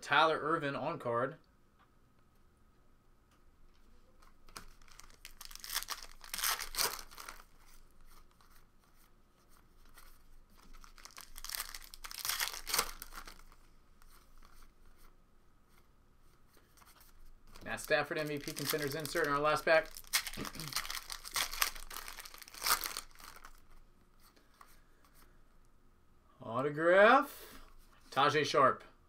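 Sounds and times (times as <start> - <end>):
wrappers torn and crinkled: 4.6 - 8.4, 10.6 - 13.6, 17.6 - 23.7.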